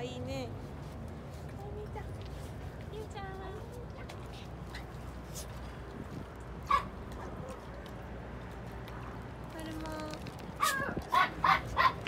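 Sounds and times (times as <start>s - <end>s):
dog barking: 6.7s - 7.5s, 10.6s - 12.0s.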